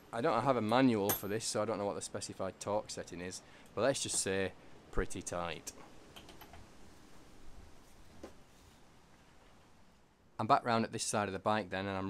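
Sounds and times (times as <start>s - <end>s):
quiet room noise: 0.0s - 12.0s.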